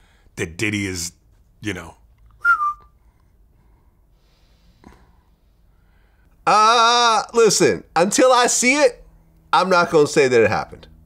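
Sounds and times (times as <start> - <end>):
person whistling: 2.4 - 3.0.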